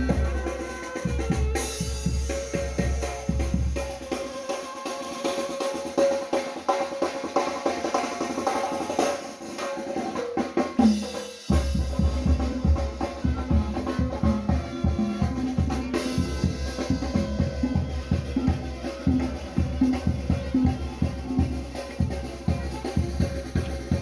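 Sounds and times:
brass band melody: 0.0s - 7.2s, 11.5s - 24.0s
snare drum: 0.0s - 24.0s
bass drum steady beat: 11.5s - 24.0s.

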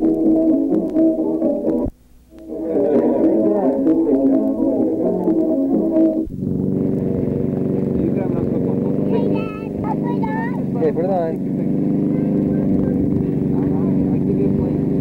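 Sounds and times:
small engine running: 6.3s - 15.0s
child calling out: 9.1s - 10.6s.

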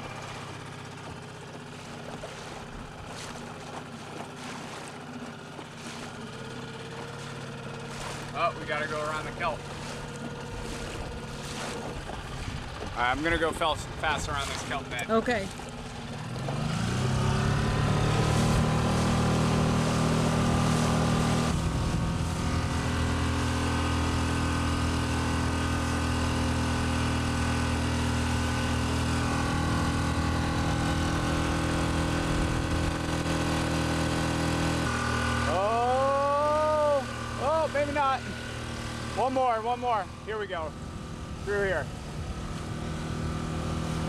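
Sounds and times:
outboard motor running: 0.0s - 44.0s.

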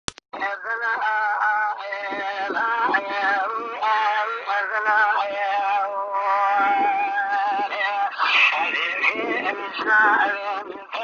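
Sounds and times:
person singing unaccompanied: 0.3s - 11.0s.

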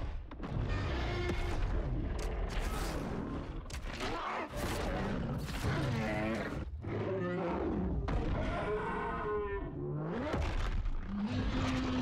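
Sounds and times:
monsters roaring and growling: 2.0s - 12.0s.

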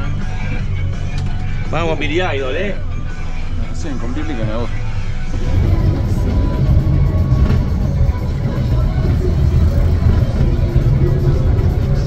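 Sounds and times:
engine and road rumble: 0.0s - 12.0s
faint music: 0.0s - 12.0s
indistinct voices: 3.5s - 12.0s.

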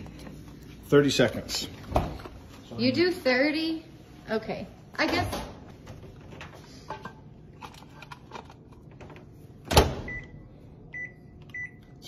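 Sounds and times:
microwave door shutting: 9.6s - 10.2s.

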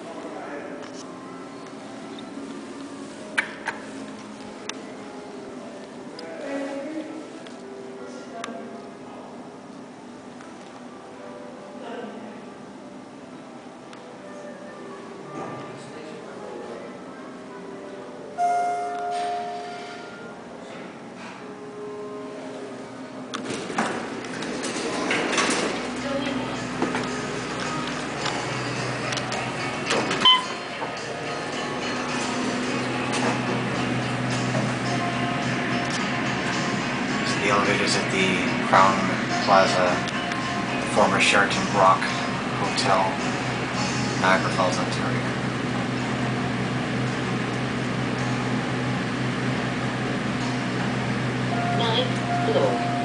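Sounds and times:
short high electronic beep: 18.4s - 20.3s
steady low hum: 24.0s - 53.0s.

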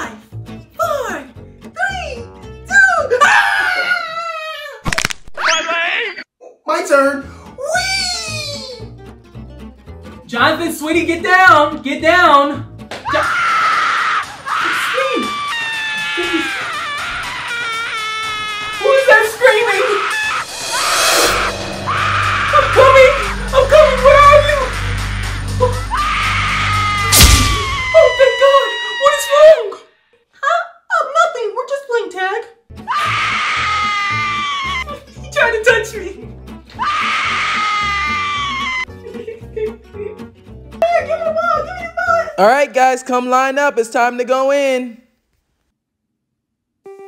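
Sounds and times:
background music: 0.0s - 3.3s, 6.9s - 17.8s, 18.4s - 28.3s, 32.7s - 42.7s
person screaming: 13.1s - 29.8s, 32.9s - 34.9s, 36.8s - 38.9s.

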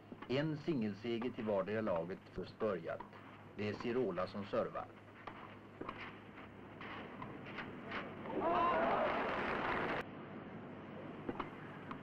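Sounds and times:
film soundtrack hum and hiss: 0.0s - 12.0s
tennis ball hits: 5.2s - 6.2s.

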